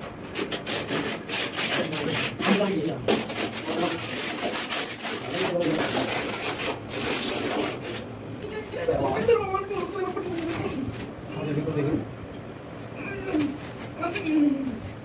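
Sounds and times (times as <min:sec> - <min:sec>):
trowel scraping mortar on tile: 0:00.0 - 0:08.1.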